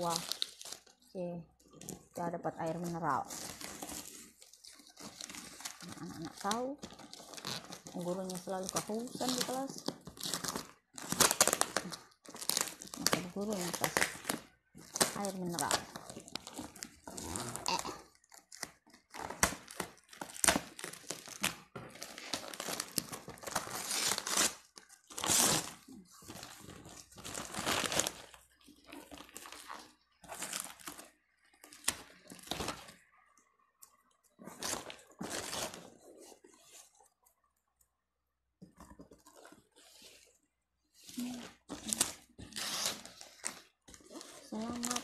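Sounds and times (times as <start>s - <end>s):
wrapping paper tearing and crumpling: 0.0s - 1.0s, 1.7s - 33.2s, 34.3s - 37.0s, 41.0s - 45.0s.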